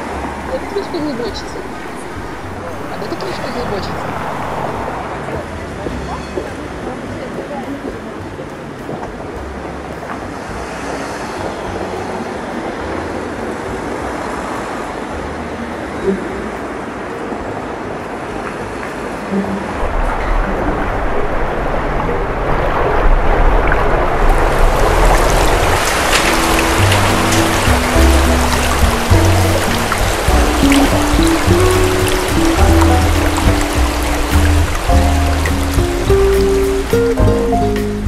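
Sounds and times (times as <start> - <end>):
flowing water: 0.0 - 38.0
slow music with bass: 4.9 - 21.7, 24.5 - 38.0.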